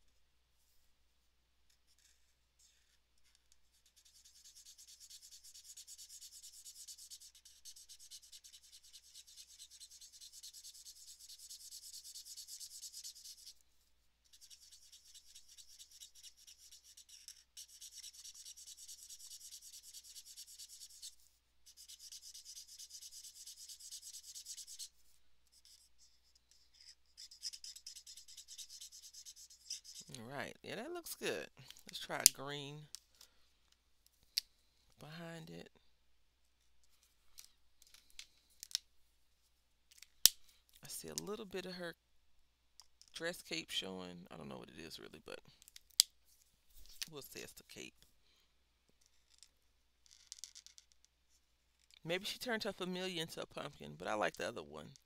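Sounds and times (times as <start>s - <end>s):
marker rubbing on paper: 1.9s - 32.4s.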